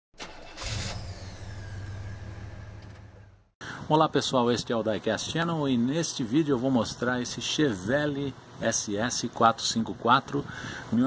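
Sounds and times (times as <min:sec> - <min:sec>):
car engine starting and running: 0:00.2 - 0:03.5.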